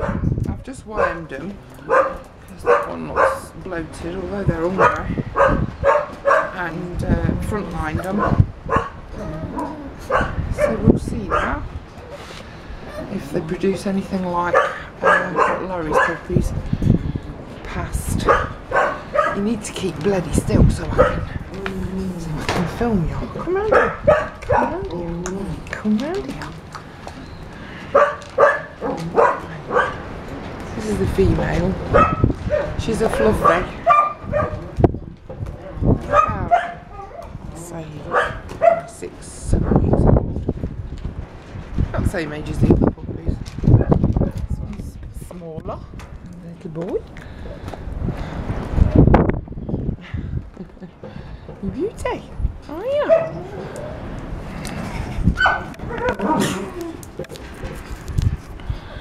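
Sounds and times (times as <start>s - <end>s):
dog barking: 0.0s - 0.3s, 1.0s - 3.5s, 4.8s - 6.6s, 8.0s - 12.2s, 14.5s - 16.3s, 18.2s - 19.4s, 21.0s - 21.3s, 23.6s - 24.8s, 27.9s - 30.0s, 31.9s - 34.7s, 35.6s - 37.4s, 38.1s - 38.9s, 53.0s - 54.0s, 55.4s - 56.6s
puppy yipping: 33.9s - 34.6s.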